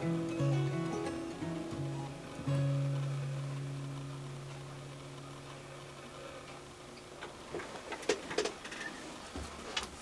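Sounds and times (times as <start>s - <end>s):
acoustic guitar chord: 0.0s - 6.5s
faint clicks and knocks: 6.4s - 10.0s.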